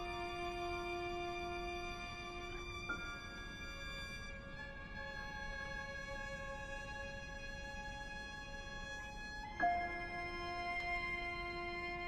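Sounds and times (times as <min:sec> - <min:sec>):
violin cello and piano playing: 0:09.4 - 0:12.0.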